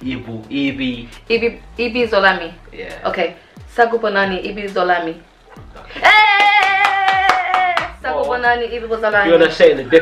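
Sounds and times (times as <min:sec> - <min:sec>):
rhythmic hand clapping: 0:05.5 - 0:08.1.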